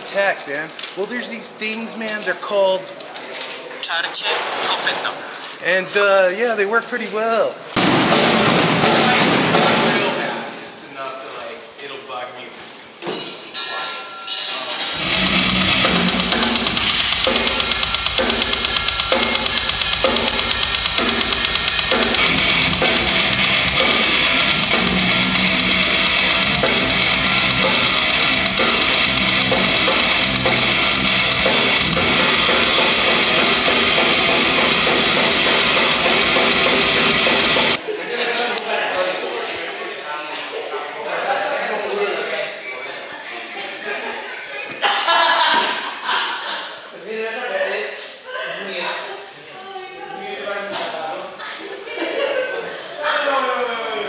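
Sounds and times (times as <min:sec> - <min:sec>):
heavy metal band playing: 0:14.8 - 0:37.8.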